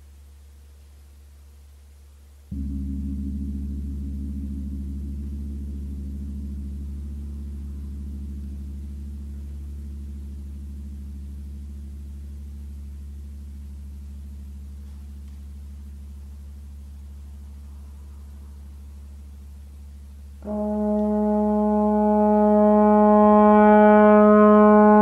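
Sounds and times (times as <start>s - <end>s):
large gong ringing: 2.5s - 8.6s.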